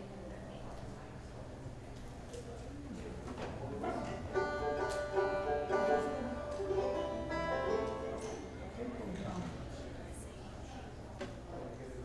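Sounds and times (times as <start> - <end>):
banjo picking: 3.8 - 8.6.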